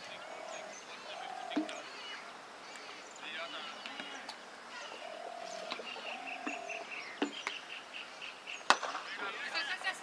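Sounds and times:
birds calling with buzzy trills: 0.0 - 8.9
cricket bat hitting ball: 8.7 - 9.0.

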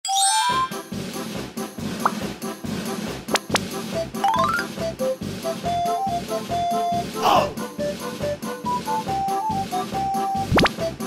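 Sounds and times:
bright rising chime: 0.1 - 0.8
light background music: 0.1 - 11.0.

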